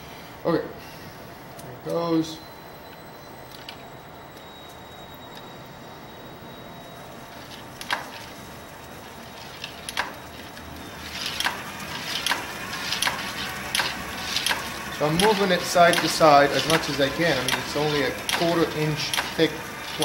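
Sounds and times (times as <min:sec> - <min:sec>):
drill humming: 0:09.3 - 0:20.0
sharp ticks: 0:12.2 - 0:19.5.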